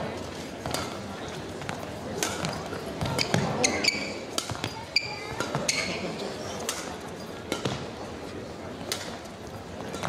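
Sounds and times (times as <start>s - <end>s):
rackets hitting shuttlecock: 0.6s - 6.0s, 6.6s - 7.9s, 8.8s - 9.2s
shoes squeaking on court: 0.6s - 7.8s.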